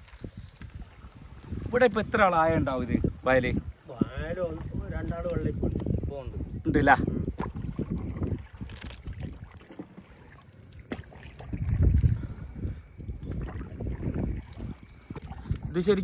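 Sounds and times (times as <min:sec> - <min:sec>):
wind buffeting microphone: 0:00.0 - 0:10.0, 0:10.9 - 0:16.0
water lapping against boat: 0:07.0 - 0:16.0.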